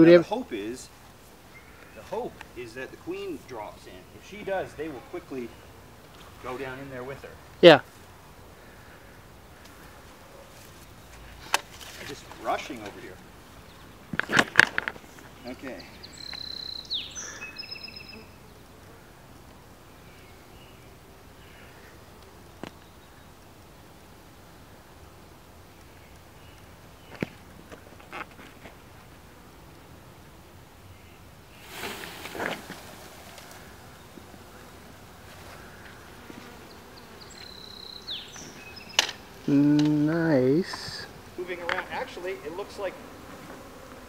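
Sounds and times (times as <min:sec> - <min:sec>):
branch rustling: 0:09.5 - 0:15.6, 0:31.5 - 0:36.6
honeybee swarm humming: 0:31.3 - 0:44.0.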